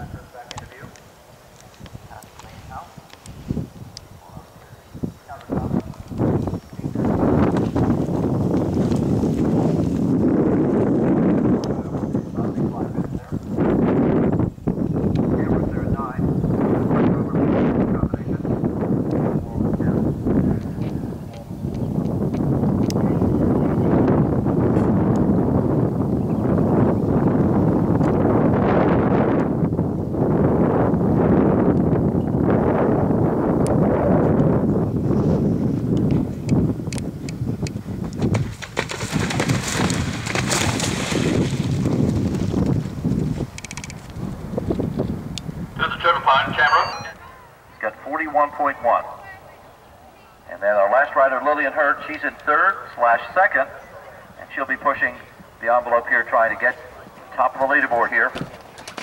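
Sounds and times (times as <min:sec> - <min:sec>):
steady outdoor noise: 0:00.0 - 0:59.0
person speaking clearly: 0:45.8 - 0:49.2
indistinct voices: 0:45.8 - 0:58.4.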